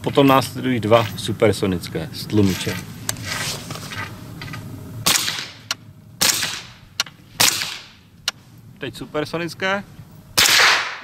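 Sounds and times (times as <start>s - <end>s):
suppressed rifle shots: 5.0s - 8.0s, 10.4s - 11.0s.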